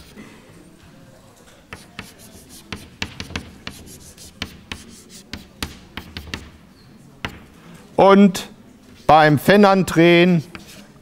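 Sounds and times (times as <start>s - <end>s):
chalk tapping and scratching: 1.7s - 6.6s, 7.2s - 7.6s, 10.4s - 11.0s.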